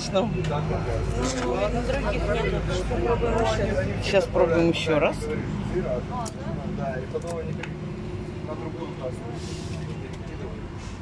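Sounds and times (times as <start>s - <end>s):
faint voices: 0.0s - 11.0s
low engine hum: 0.0s - 11.0s.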